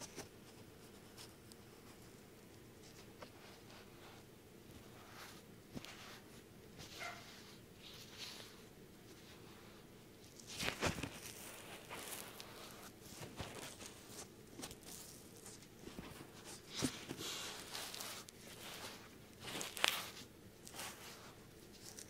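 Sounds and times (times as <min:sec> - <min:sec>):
rubbing and rustling on microphone: 0:00.0 - 0:02.2, 0:02.8 - 0:22.0
scraping brushes: 0:02.8 - 0:22.0.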